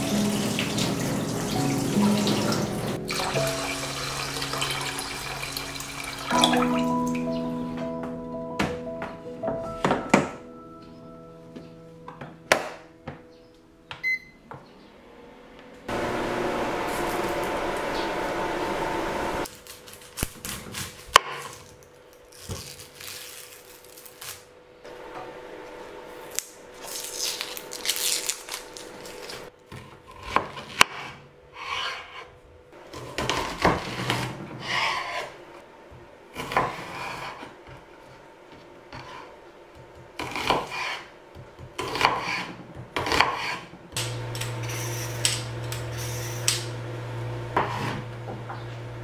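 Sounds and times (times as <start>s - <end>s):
onion skin rustling and crackling: 19.5s - 24.5s, 26.2s - 29.5s
knife slicing onion: 40.2s - 43.7s.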